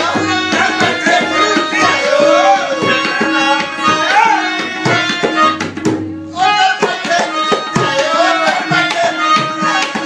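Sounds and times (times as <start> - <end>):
harmonium sustained notes: 0.0 - 10.0
tabla playing fast: 0.0 - 10.0.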